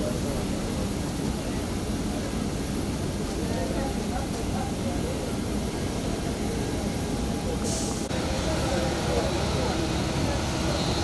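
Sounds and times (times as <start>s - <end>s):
airport ground noise rumble: 0.0s - 11.0s
short hiss: 7.6s - 8.1s.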